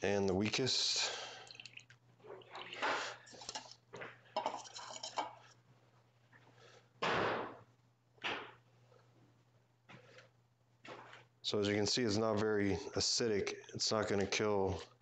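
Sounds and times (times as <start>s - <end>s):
small cups clinking: 1.3s - 5.5s.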